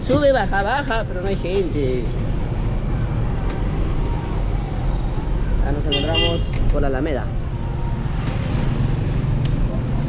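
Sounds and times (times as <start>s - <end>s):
minibus engine and road noise: 0.0s - 10.0s.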